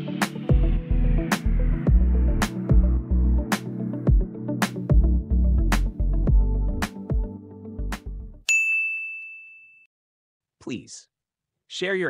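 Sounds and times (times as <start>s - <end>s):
electronic background music: 0.0s - 8.4s
timer ding: 8.5s - 9.9s.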